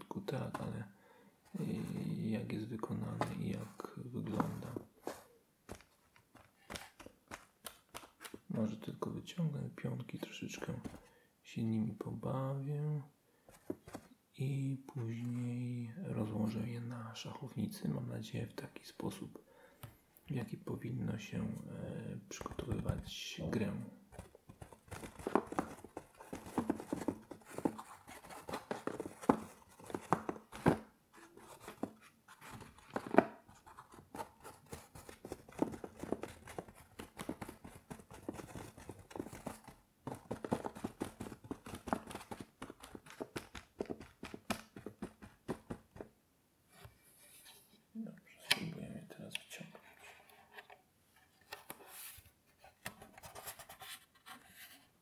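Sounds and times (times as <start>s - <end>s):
taps on felt-lined box: 24.1s - 46.1s.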